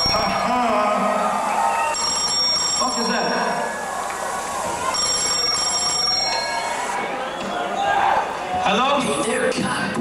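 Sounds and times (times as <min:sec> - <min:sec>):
murmur of voices: 0:00.0 - 0:10.0
telephone ringing: 0:01.9 - 0:03.8, 0:04.6 - 0:07.0.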